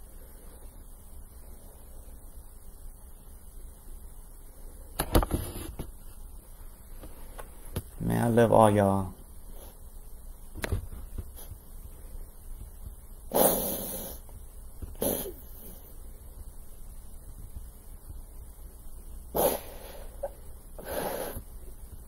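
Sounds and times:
man breathing heavily: 0:19.6 - 0:21.5.

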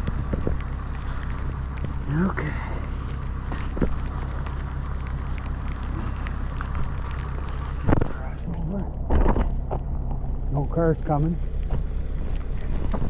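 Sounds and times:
rain and wind on microphone: 0:00.0 - 0:13.0
traffic rumble on wet road: 0:00.0 - 0:13.0
sharp thumps: 0:08.8 - 0:10.5.

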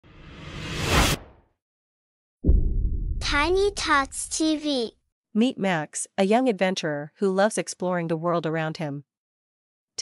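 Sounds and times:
whoosh sound effect: 0:00.0 - 0:01.4.

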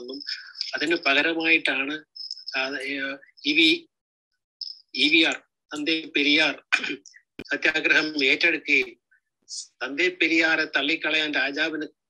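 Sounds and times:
man speaking: 0:00.0 - 0:04.0, 0:04.6 - 0:12.0.

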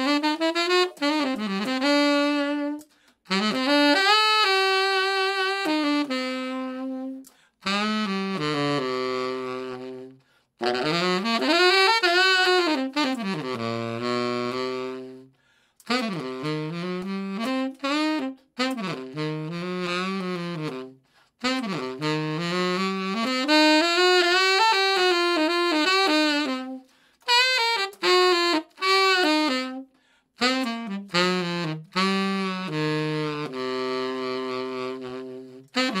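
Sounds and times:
tenor saxophone solo: 0:00.0 - 0:36.0.

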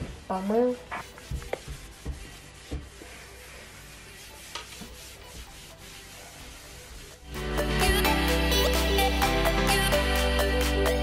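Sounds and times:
cleaning wipe rubbing shelf: 0:00.0 - 0:07.4.

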